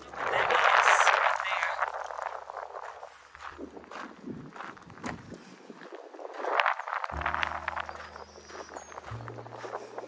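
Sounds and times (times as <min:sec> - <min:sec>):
footsteps crunching on gravel: 0:00.0 - 0:10.0
background music of low held notes: 0:07.1 - 0:10.0.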